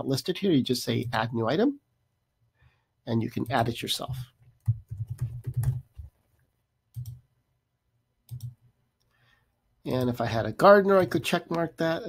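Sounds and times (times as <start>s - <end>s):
keyboard typing: 4.4s - 6.2s, 6.9s - 7.3s, 8.3s - 8.6s.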